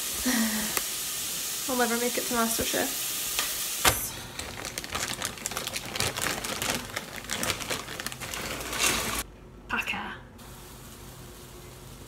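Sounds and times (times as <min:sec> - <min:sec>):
onion sizzling in a pot: 0:00.0 - 0:09.2, 0:10.4 - 0:12.0.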